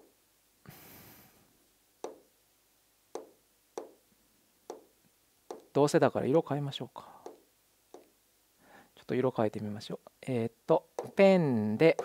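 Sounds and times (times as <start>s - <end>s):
taps on touchscreen glass: 2.0s - 2.3s, 3.2s - 4.0s, 4.7s - 4.9s, 5.5s - 5.8s, 7.2s - 8.1s, 11.0s - 11.2s.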